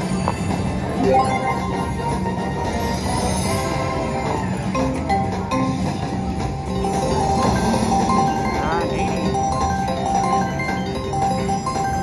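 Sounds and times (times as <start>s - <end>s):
slot machine jingling tones: 0.1s - 6.0s, 6.6s - 12.0s.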